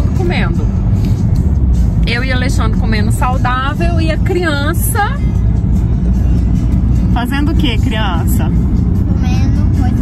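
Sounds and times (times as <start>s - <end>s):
background music: 0.0s - 10.0s
car road and engine rumble: 0.0s - 10.0s.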